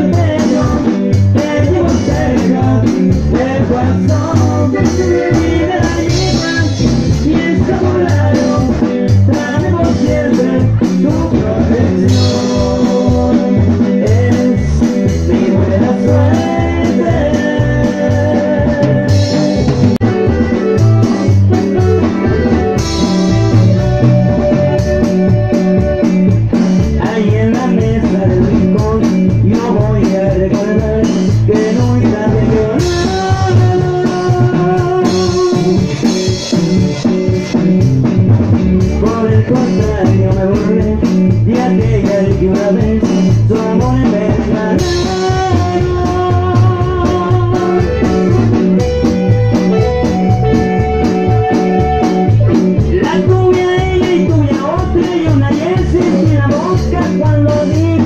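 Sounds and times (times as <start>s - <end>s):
live band playing dance music: 0.0s - 58.0s
steady bass beat: 0.0s - 58.0s.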